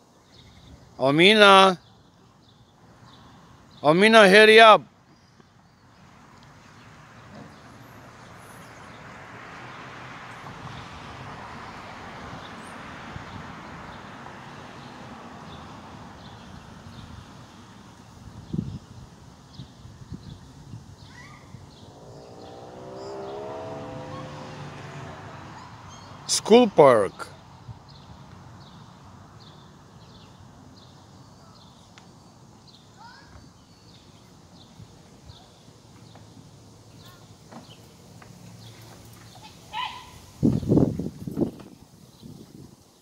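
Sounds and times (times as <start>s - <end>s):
vehicle engine hum: 20.3s - 30.7s.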